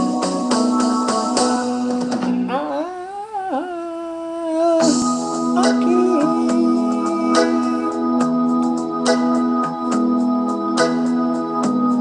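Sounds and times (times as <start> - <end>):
karaoke backing music: 0.0 - 3.2, 4.2 - 12.0
man singing held note: 2.5 - 8.0.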